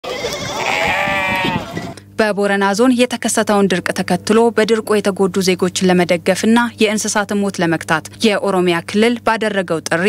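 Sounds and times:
sheep and goats bleating: 0:00.0 - 0:02.0.

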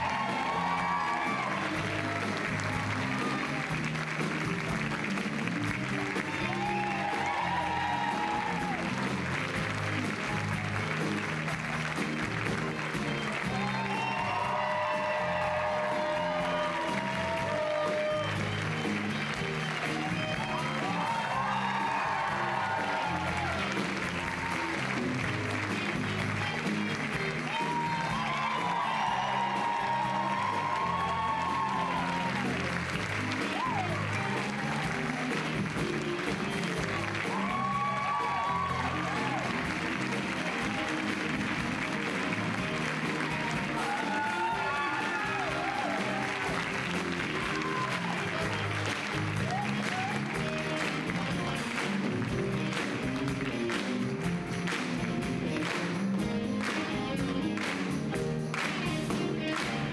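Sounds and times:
audience applause: 0:00.0 - 0:59.9
upbeat stage music: 0:00.0 - 0:59.9.

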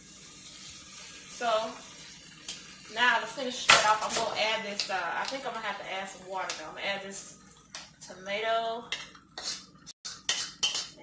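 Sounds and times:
chicken sizzling in a skillet: 0:00.0 - 0:11.0.

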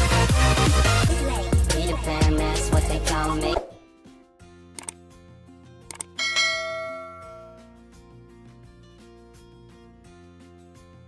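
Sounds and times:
double mouse click: 0:04.8 - 0:05.0, 0:05.9 - 0:06.2
notification bell chime: 0:06.2 - 0:07.7.

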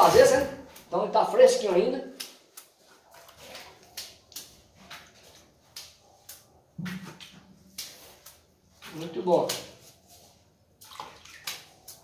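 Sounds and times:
stiff brush scrubbing wet cement: 0:00.0 - 0:12.0.

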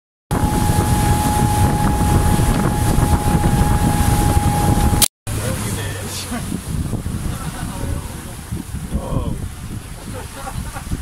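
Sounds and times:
steady whine: 0:00.3 - 0:05.6
motorboat engine running: 0:00.3 - 0:10.2
rushing water: 0:00.3 - 0:11.0
wind buffeting microphone: 0:00.3 - 0:11.0.

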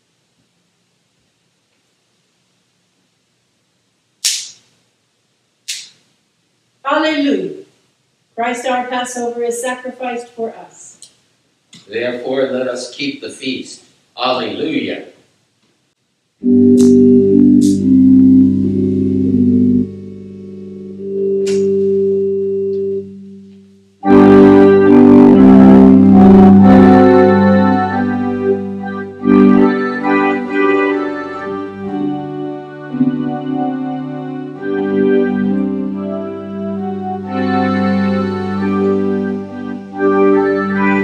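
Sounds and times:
wafer snapping: 0:04.2 - 0:04.8
church organ low chord: 0:16.4 - 0:41.0.

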